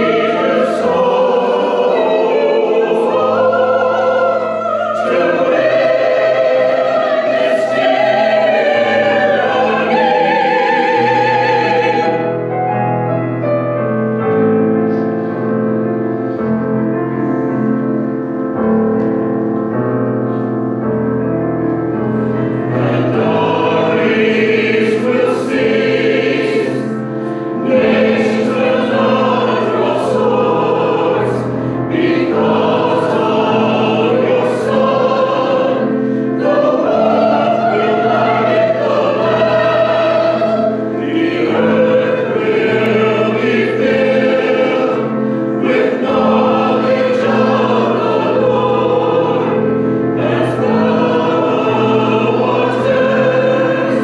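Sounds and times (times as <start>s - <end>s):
choir singing: 0.0s - 20.4s, 21.9s - 54.0s
piano accompaniment: 0.0s - 54.0s.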